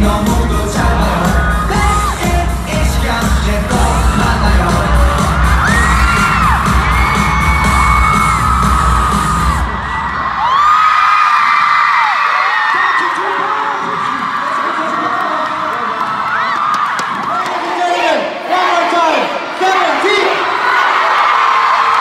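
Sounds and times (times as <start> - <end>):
live pop music with heavy beat: 0.0 - 10.7
crowd screaming and cheering: 0.1 - 22.0.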